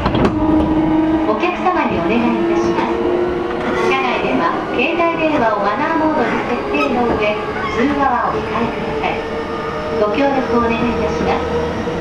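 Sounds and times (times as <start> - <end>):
traction equipment tones: 0.0 - 12.0
train running rumble: 0.0 - 12.0
recorded onboard announcement: 1.0 - 12.0.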